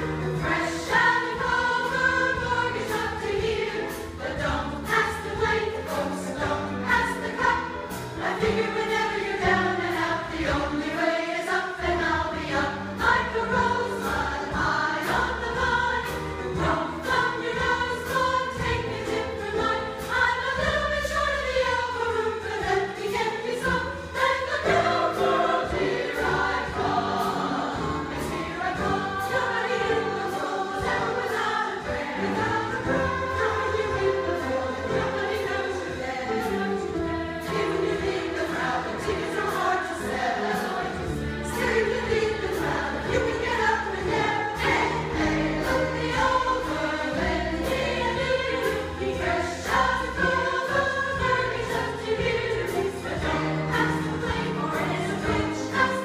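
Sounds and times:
women's choir singing: 0:00.0 - 0:56.0.

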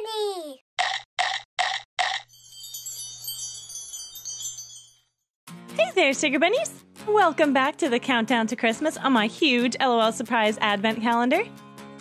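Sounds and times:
twinkling wind-chime-like tones: 0:02.3 - 0:05.3.

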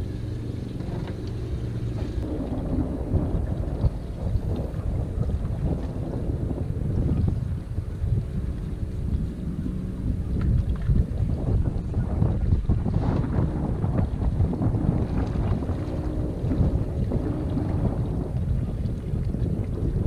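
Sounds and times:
steady low hum: 0:00.0 - 0:20.0
wind buffeting microphone: 0:00.0 - 0:20.0.

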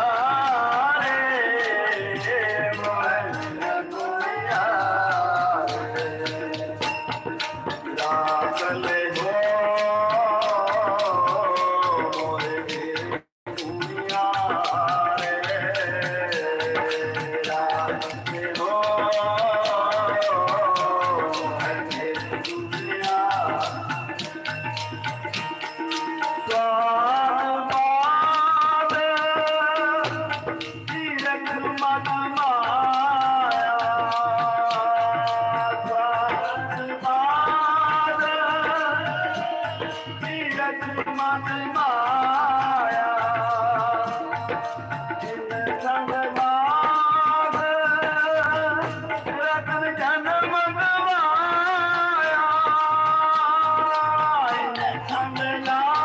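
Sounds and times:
sustained harmonium: 0:00.0 - 0:56.0
tabla strokes: 0:00.0 - 0:56.0.

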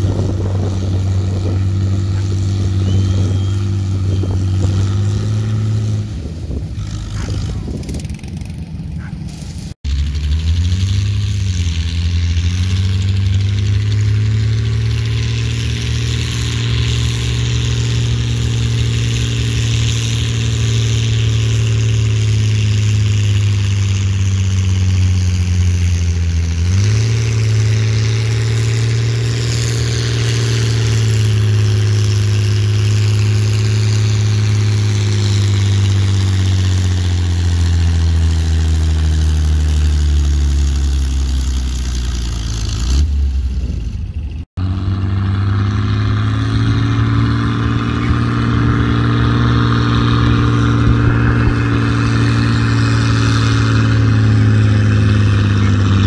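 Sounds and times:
tractor engine working hard: 0:00.0 - 0:56.0.

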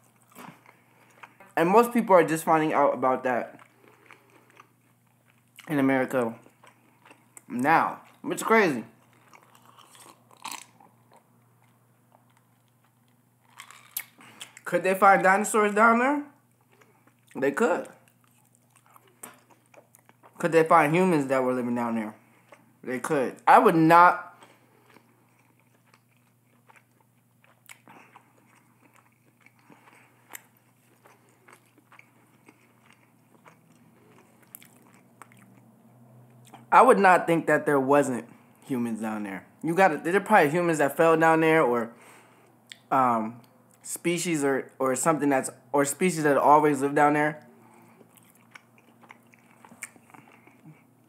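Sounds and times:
chewing with mouth clicks: 0:00.0 - 0:01.6, 0:03.5 - 0:05.7, 0:06.4 - 0:08.2, 0:08.9 - 0:14.7, 0:16.5 - 0:20.4, 0:24.3 - 0:36.7, 0:47.4 - 0:51.0
faint low hum: 0:00.0 - 0:51.0.

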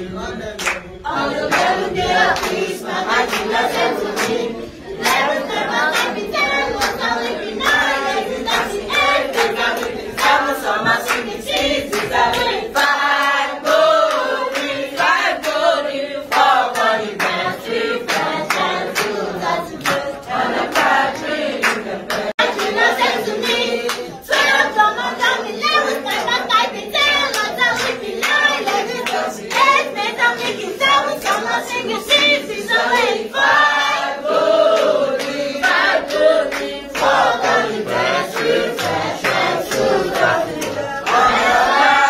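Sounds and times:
children singing: 0:00.0 - 0:42.0
hand-clapping: 0:00.6 - 0:42.0.

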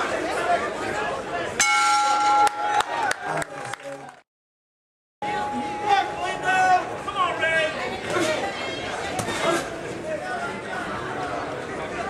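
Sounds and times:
crowd chatter: 0:00.0 - 0:04.2, 0:05.2 - 0:12.0
boxing ring bell clanging: 0:01.6 - 0:02.7.

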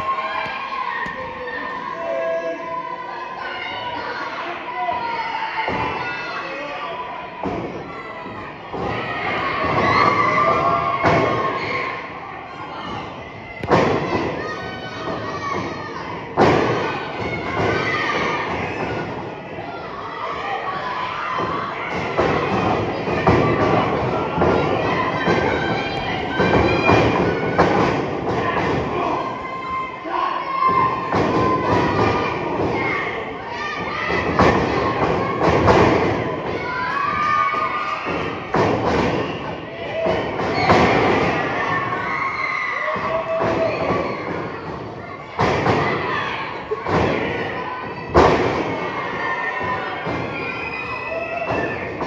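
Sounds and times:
children's voices: 0:00.0 - 0:38.5
crowd chatter: 0:00.0 - 0:52.0.

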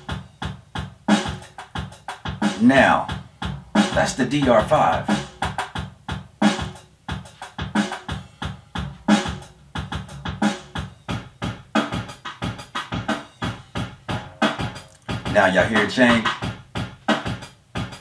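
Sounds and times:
drum machine beat: 0:00.0 - 0:18.0.

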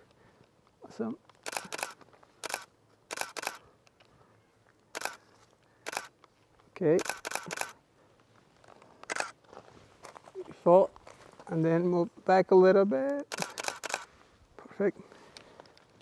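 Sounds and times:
camera shutter clicking: 0:01.4 - 0:03.6, 0:04.9 - 0:05.2, 0:05.8 - 0:06.1, 0:07.0 - 0:07.8, 0:09.0 - 0:09.4, 0:13.2 - 0:14.1.

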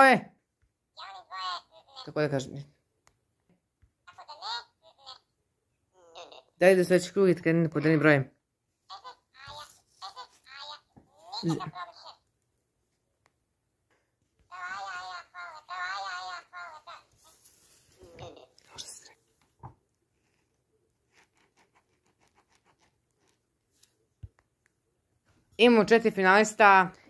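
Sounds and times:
quiet high-pitched voice: 0:04.1 - 0:05.3, 0:08.9 - 0:12.3, 0:14.4 - 0:19.3
pen scratching on paper: 0:20.2 - 0:23.4.

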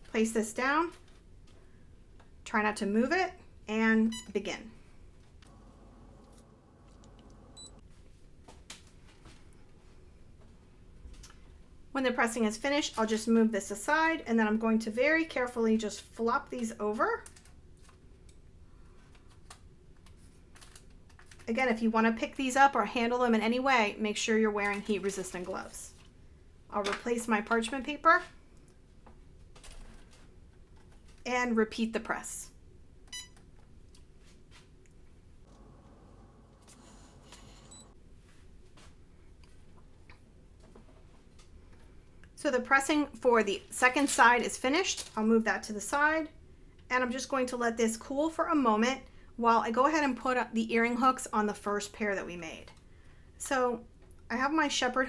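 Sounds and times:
heat press electronic beep: 0:04.1 - 0:04.4, 0:07.5 - 0:07.8, 0:36.8 - 0:38.0
short high beep: 0:37.4 - 0:38.0.

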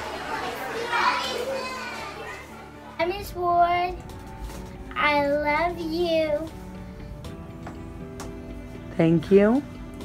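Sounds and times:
children talking and calling out: 0:00.0 - 0:06.6.

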